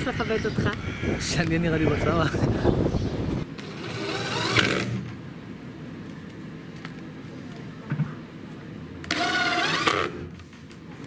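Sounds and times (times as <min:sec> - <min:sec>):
cordless drill motor whine: 0:03.6 - 0:05.0, 0:09.0 - 0:10.2.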